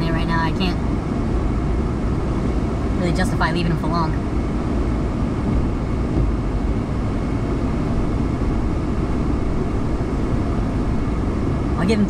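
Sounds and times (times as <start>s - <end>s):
wind buffeting a car: 0.0s - 12.0s.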